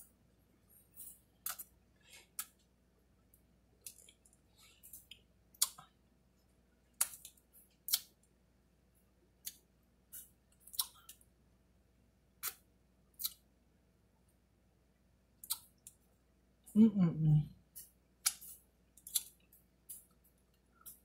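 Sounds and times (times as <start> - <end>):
wet lip smacks while eating: 5.1 - 5.8, 7.9 - 8.1, 13.2 - 13.4, 17.8 - 20.1.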